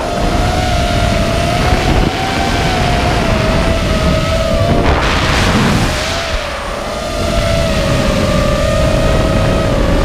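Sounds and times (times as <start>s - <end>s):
drone motors buzzing whine: 0.0s - 10.0s
rush of air: 1.6s - 8.0s.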